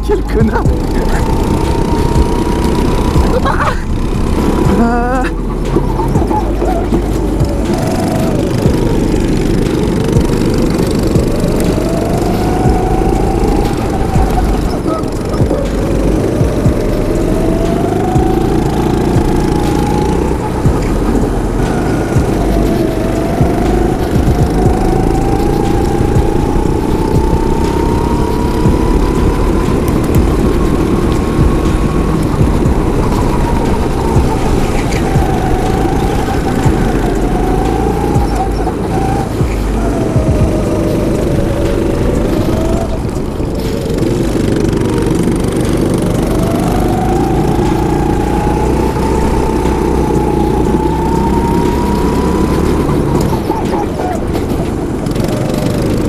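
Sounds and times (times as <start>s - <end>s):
go-kart engine revving: 0.0s - 56.0s
wind rumble on microphone: 0.0s - 56.0s.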